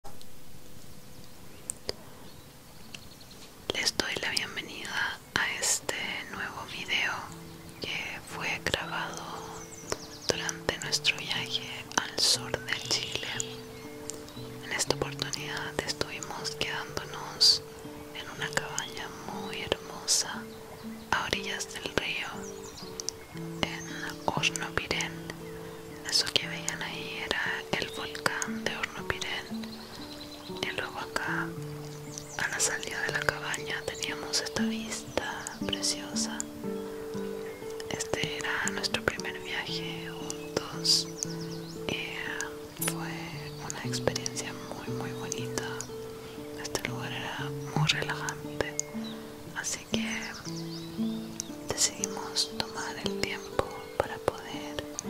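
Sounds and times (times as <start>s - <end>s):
background music of low held notes: 0.0s - 55.0s
person whispering: 3.7s - 9.6s, 10.3s - 13.6s, 14.6s - 17.6s, 18.2s - 20.4s, 21.1s - 22.4s, 23.6s - 25.4s, 26.0s - 29.5s, 30.6s - 31.5s, 32.4s - 36.4s, 37.8s - 41.2s, 41.9s - 45.9s, 46.6s - 48.9s, 49.6s - 50.4s, 51.7s - 55.0s.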